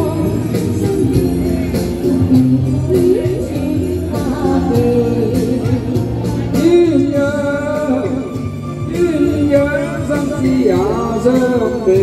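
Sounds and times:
woman singing into microphone: 0.0s - 7.7s
karaoke backing track with beat: 0.0s - 12.0s.

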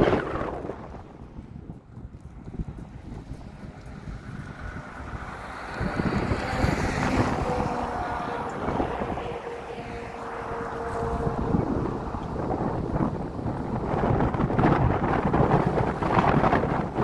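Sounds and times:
road noise: 0.0s - 17.0s
wind buffeting microphone: 0.0s - 17.0s
truck engine passing: 2.3s - 17.0s.

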